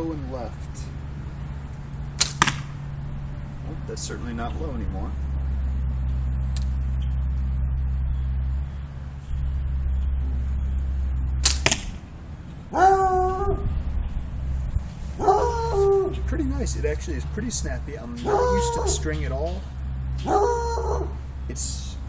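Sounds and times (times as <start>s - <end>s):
steady low rumble: 0.0s - 22.0s
bowstring snap: 2.2s - 2.7s, 11.4s - 12.0s.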